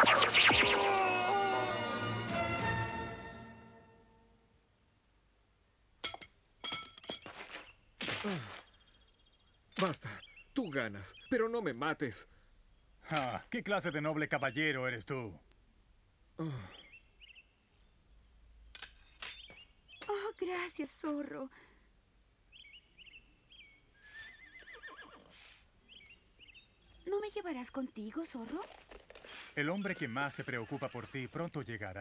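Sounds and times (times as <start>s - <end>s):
background music: 0.0s - 4.5s
small birds chirping: 8.6s - 15.8s, 16.6s - 21.2s, 22.4s - 32.0s.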